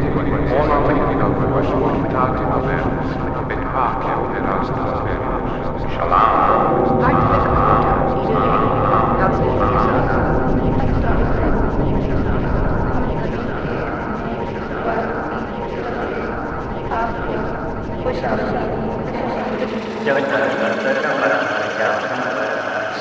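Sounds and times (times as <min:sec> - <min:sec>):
layered processed voice fragments: 0:00.0 - 0:23.0
steady low rumble: 0:00.0 - 0:23.0.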